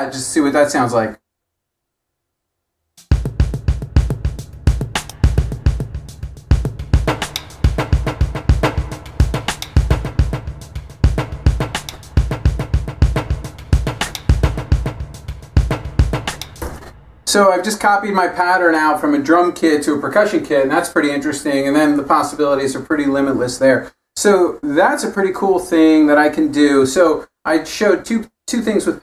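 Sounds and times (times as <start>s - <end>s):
electronic drum beat: 3.0s - 17.5s.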